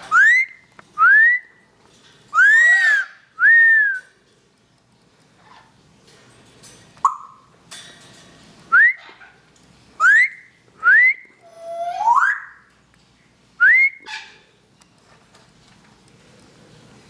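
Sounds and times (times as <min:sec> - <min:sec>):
parrot whistling: 0:00.0 - 0:01.6, 0:02.3 - 0:04.1, 0:07.0 - 0:07.4, 0:08.7 - 0:09.2, 0:10.0 - 0:12.7, 0:13.6 - 0:14.3.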